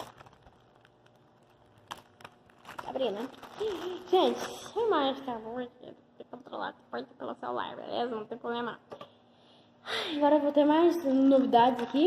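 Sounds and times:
plastic bag crinkling: 0:00.0 - 0:05.1.

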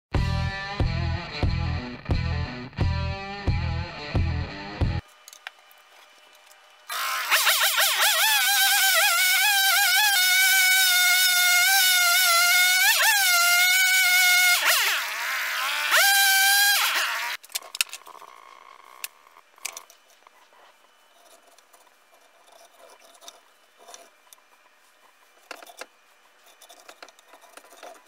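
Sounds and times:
chainsaw cutting wood: 0:06.9 - 0:17.4.

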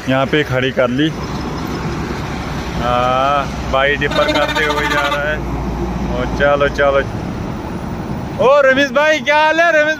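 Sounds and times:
traffic rumble: 0:00.0 - 0:09.9
truck approaching: 0:00.0 - 0:09.9.

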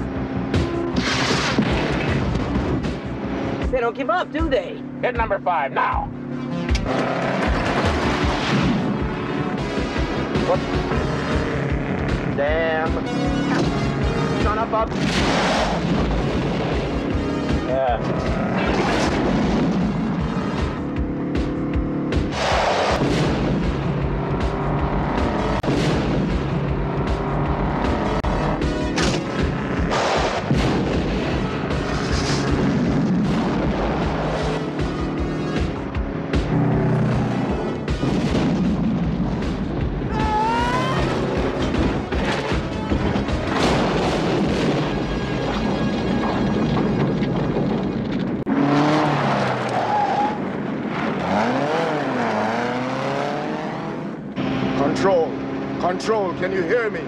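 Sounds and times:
film score music: 0:00.0 - 0:57.0
explosions booming: 0:01.0 - 0:02.8, 0:14.8 - 0:16.9, 0:18.4 - 0:20.4, 0:22.3 - 0:24.0, 0:25.6 - 0:26.8, 0:29.0 - 0:34.2, 0:37.8 - 0:40.3, 0:41.1 - 0:48.5.

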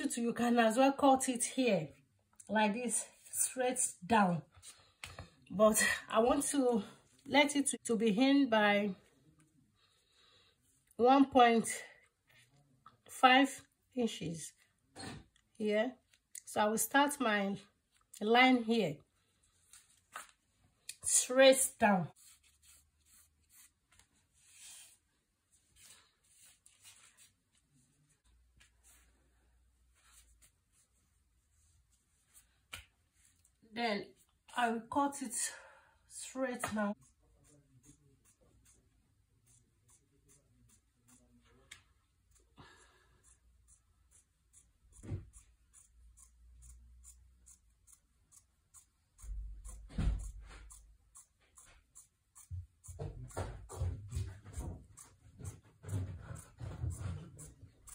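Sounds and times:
marking tool scratching fabric: 0:36.9 - 0:57.9.

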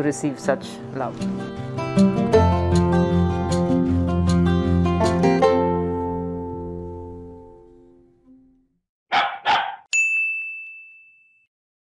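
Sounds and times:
dog barking: 0:09.1 - 0:09.9.

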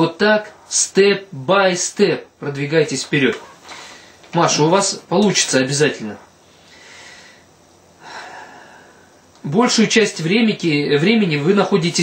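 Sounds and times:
man breathing in: 0:03.7 - 0:04.2, 0:06.4 - 0:09.3.

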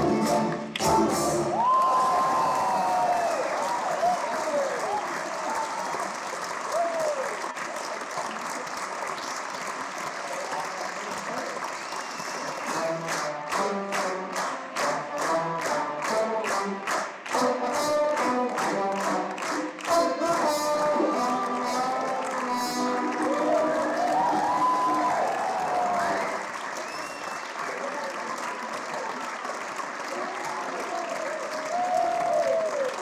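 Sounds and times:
rhythmic clapping: 0:00.0 - 0:01.9, 0:03.3 - 0:33.0
audience applauding and cheering: 0:00.0 - 0:33.0.

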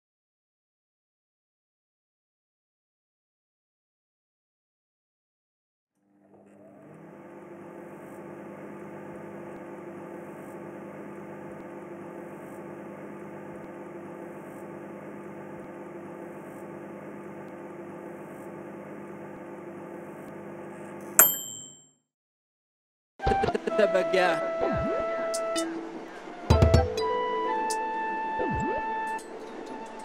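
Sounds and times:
sharp metallic ding: 0:21.2 - 0:21.8.

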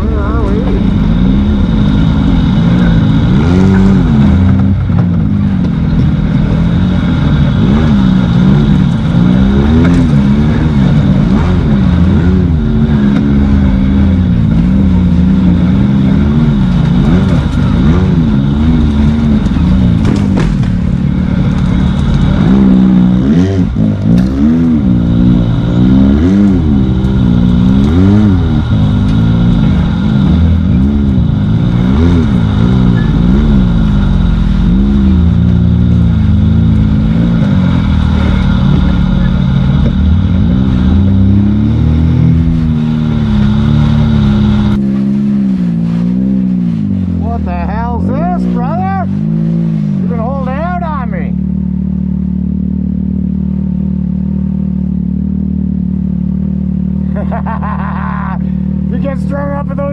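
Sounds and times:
off-road vehicle engine revving: 0:00.0 - 0:59.9.

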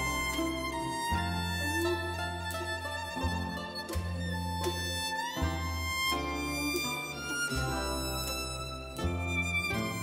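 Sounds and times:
plucked lute chords: 0:00.0 - 0:10.0
violin melody: 0:00.0 - 0:10.0.

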